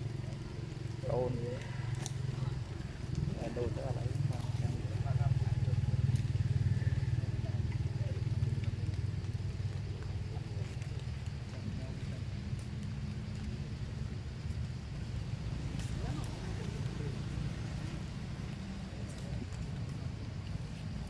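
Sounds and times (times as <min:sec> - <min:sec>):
faint voices: 0:00.0 - 0:21.0.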